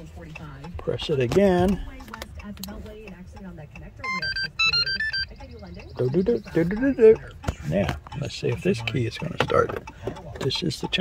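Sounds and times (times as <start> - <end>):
electronic beeps tune: 4.0 - 7.0.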